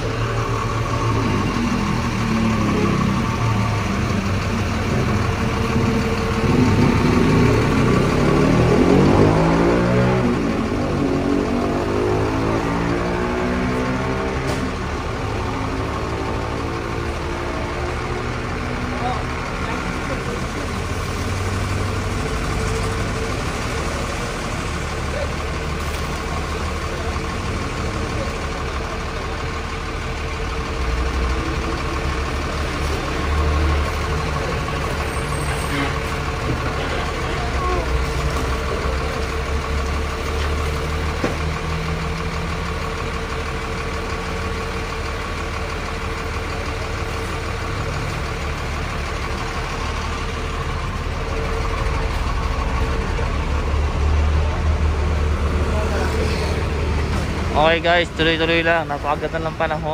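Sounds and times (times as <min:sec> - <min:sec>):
truck engine idling: 0:00.0 - 0:59.9.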